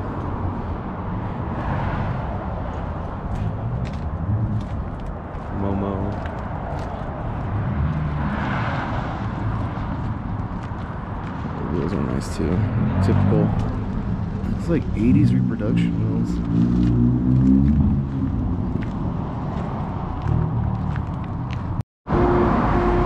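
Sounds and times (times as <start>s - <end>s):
people talking: 5.6s - 6.1s, 11.6s - 13.6s, 14.5s - 16.4s
low rumble: 9.2s - 21.8s.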